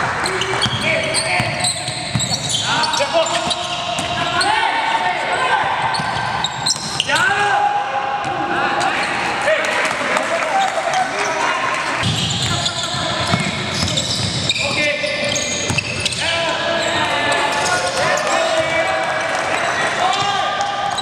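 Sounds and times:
sneakers squeaking: 0.0 - 7.5, 8.2 - 9.4, 10.5 - 21.0
players calling out: 0.0 - 21.0.

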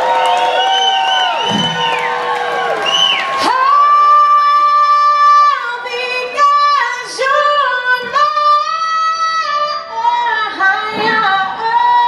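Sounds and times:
crowd cheering and whooping: 0.0 - 7.0.

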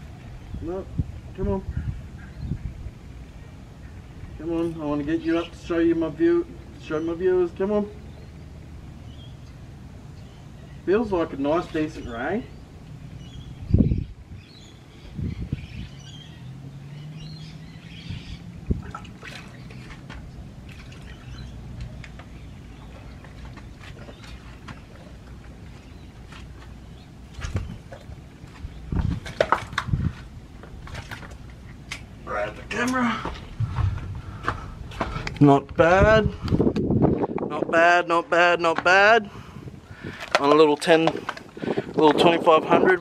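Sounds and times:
wind rumble on microphone: 0.0 - 6.8, 11.5 - 32.3, 33.3 - 43.0
faint water splashing: 17.6 - 29.8.

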